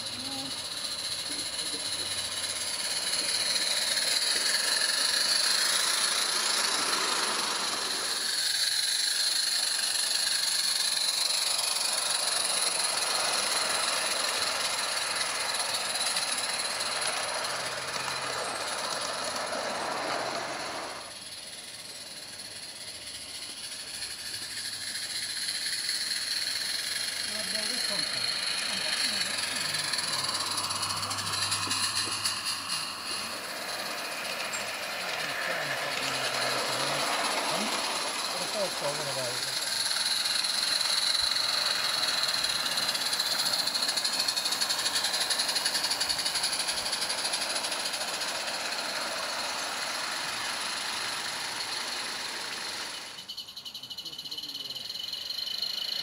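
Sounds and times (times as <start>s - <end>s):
steam locomotive hissing: 0.0s - 56.0s.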